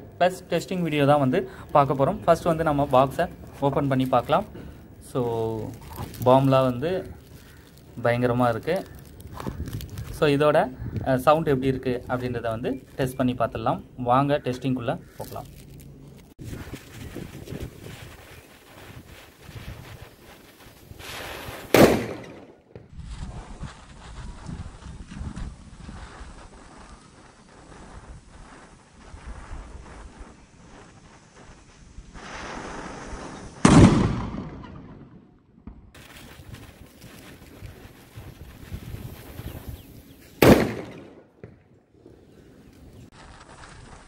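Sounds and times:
firecracker bang: 21.0s - 23.0s, 32.1s - 39.7s, 40.4s - 41.6s.

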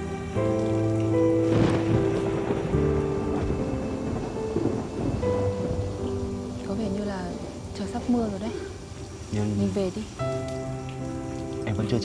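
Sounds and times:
thunder rumbling: 0.0s - 12.0s.

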